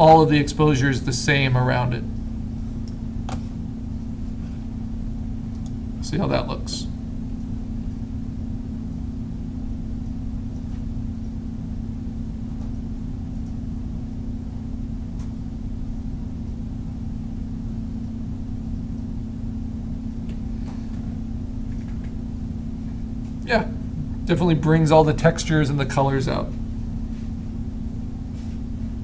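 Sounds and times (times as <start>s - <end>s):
low background hum: 0.0s - 29.0s.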